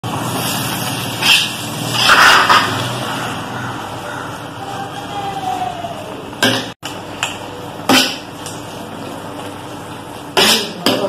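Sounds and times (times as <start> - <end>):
metal ladle scraping pot: 0.7 - 3.4.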